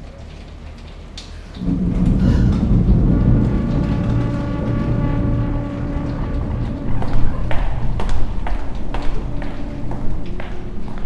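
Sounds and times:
low drone: 1.5 - 11.0
held chord of steady tones: 1.6 - 11.0
loud deep rumble: 1.6 - 11.0.

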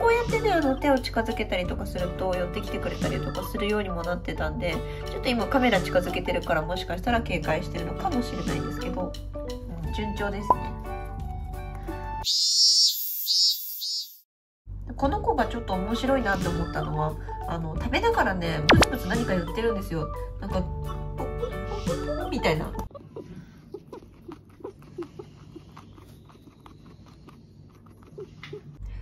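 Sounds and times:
background music: 0.0 - 12.2, 15.1 - 22.9
high-pitched squeaky chirps: 12.2 - 14.3
guinea pig chewing: 21.7 - 29.0.

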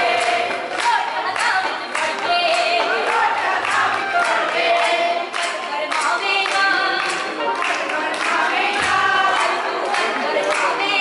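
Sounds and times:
rhythmic hand-clapping: 0.0 - 11.0
women singing together: 0.0 - 11.0.

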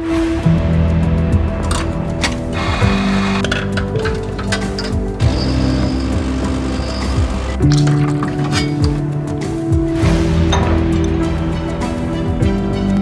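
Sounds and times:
instrumental background music: 0.0 - 13.0.

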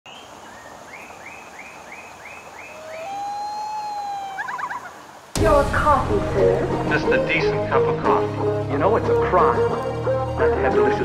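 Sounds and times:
stream water rushing: 0.1 - 11.0.

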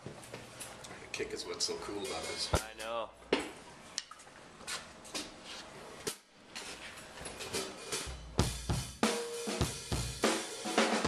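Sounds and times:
drum strokes: 2.0 - 2.9, 7.4 - 11.0
bass drum and snare hits: 8.1 - 11.0.

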